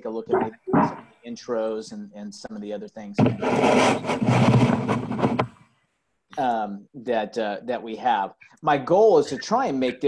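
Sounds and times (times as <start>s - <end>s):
loud scratchy rough noise: 3.2s - 5.5s.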